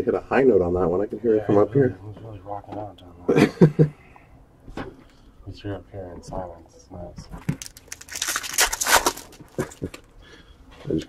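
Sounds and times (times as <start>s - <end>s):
foil wrapper crinkling: 7.4s - 10.0s.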